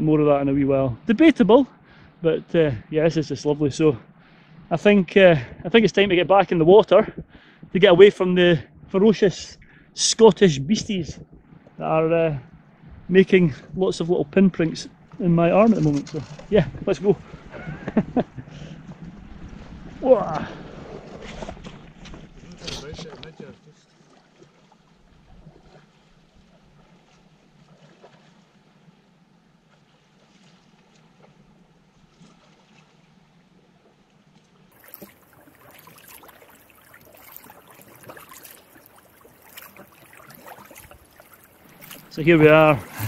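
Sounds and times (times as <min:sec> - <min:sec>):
kayak paddle strokes in water: 0:14.4 - 0:43.0
water splashes and drips: 0:23.0 - 0:28.8, 0:29.6 - 0:43.0.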